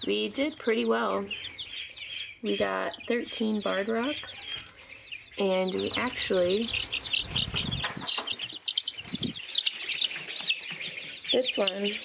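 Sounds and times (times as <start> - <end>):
young chicks peeping: 0.0 - 12.0.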